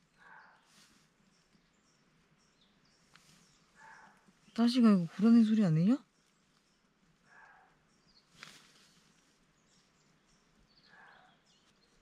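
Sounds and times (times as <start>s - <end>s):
distant birds chirping: 0.0s - 12.0s.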